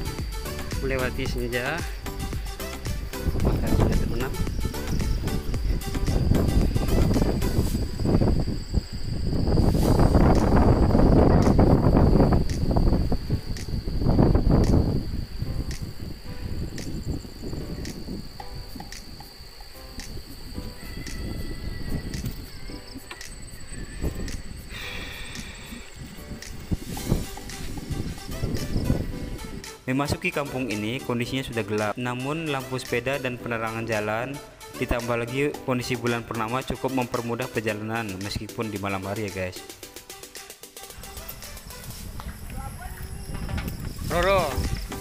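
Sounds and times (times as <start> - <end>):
background music beat: 0.0 - 8.6, 9.4 - 45.0
wind rumbling on microphone: 0.0 - 29.7, 40.9 - 45.0
insects chirring: 0.0 - 45.0.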